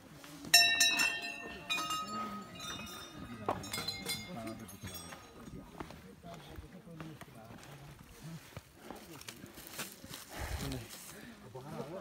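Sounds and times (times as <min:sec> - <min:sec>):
people talking: 0:00.0 - 0:12.0
short bell rings: 0:00.5 - 0:05.8
metal clinks: 0:00.5 - 0:05.9.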